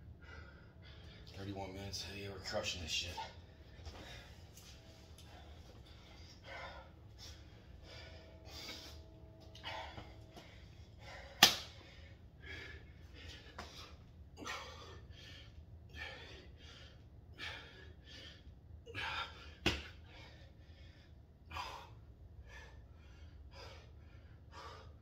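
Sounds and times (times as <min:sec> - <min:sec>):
man breathing hard: 0:00.0 - 0:01.4, 0:02.9 - 0:25.0
sharp smack: 0:11.4 - 0:11.8.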